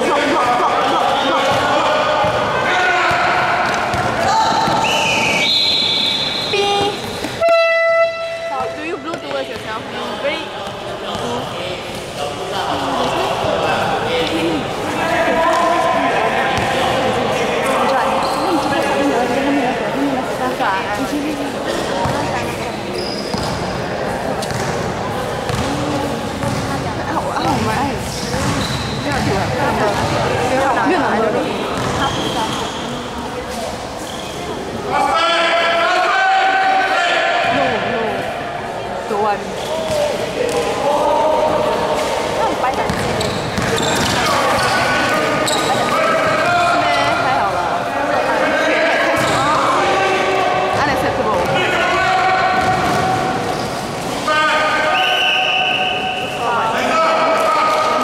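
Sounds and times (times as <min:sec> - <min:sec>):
voices of players and onlookers: 0:00.0 - 0:58.0
basketball bouncing: 0:03.1 - 0:05.3, 0:24.4 - 0:26.8, 0:27.4 - 0:30.4, 0:31.7 - 0:32.1, 0:42.6 - 0:44.8, 0:52.5 - 0:53.4
loud horn blast: 0:07.4 - 0:08.8.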